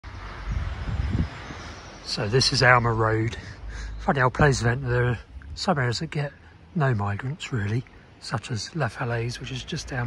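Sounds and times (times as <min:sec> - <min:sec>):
wind buffeting microphone: 0:00.1 - 0:05.9
faint background hiss: 0:00.1 - 0:10.0.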